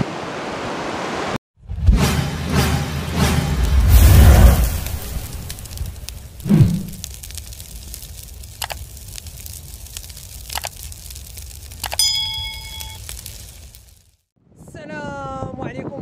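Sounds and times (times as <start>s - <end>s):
whoosh: 1.7s - 7.0s
sharp clicks: 8.1s - 13.2s
notification bell chime: 11.9s - 13.0s.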